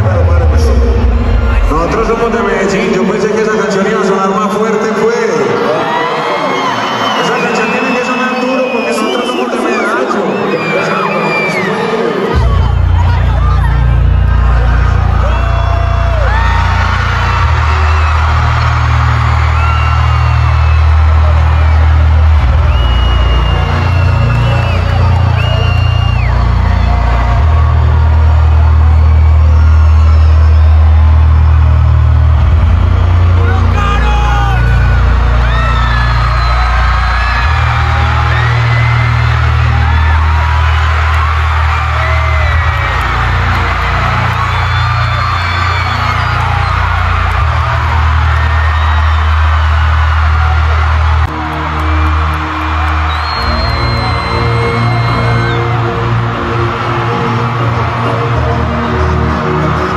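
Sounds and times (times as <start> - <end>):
crowd shouting and whooping: 0.0 - 59.9
loud live concert music: 0.0 - 59.9.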